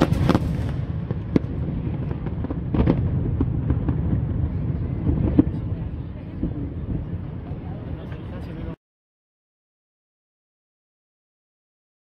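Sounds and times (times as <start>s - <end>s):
firework shells bursting: 0.0s - 4.1s.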